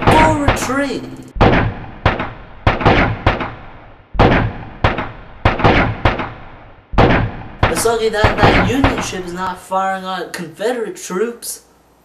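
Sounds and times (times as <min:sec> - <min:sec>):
echoing gunshots: 0:00.0 - 0:09.6.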